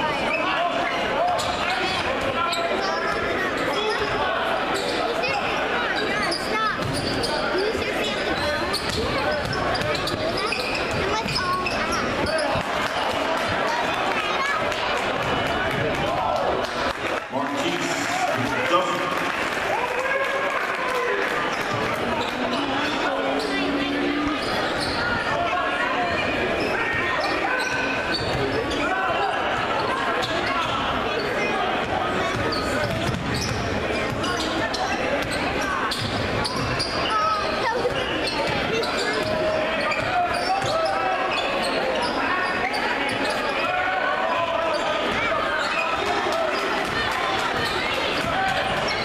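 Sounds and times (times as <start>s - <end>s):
babble of crowd voices: 0.0s - 49.0s.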